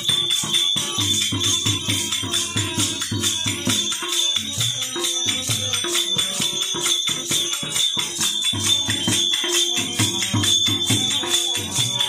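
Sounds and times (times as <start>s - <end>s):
jingling small percussion: 0.0s - 12.0s
tabla rhythm: 0.0s - 12.0s.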